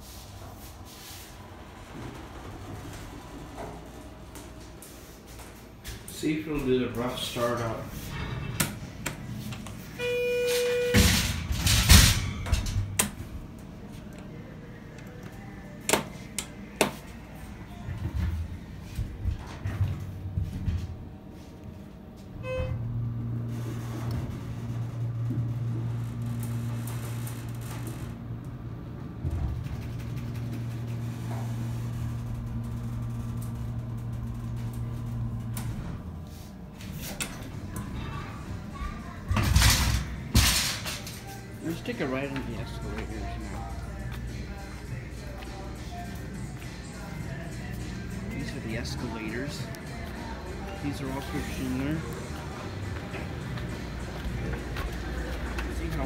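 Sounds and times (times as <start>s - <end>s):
elevator button beep: 10.0s - 11.2s
elevator chime: 10.0s - 11.2s.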